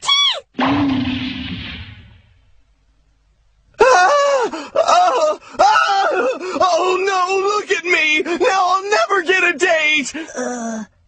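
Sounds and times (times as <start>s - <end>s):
high pained wailing cries: 3.8s - 7.0s.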